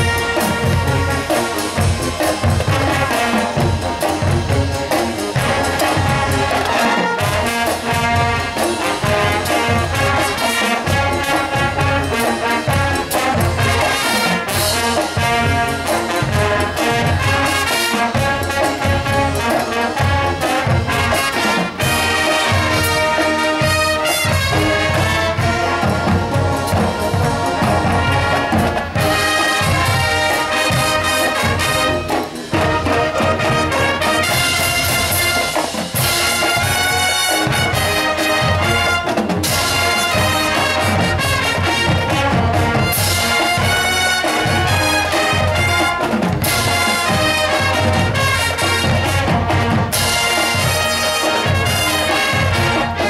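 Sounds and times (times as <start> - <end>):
brass section playing: 0.0 - 53.0
drumline playing: 0.0 - 53.0.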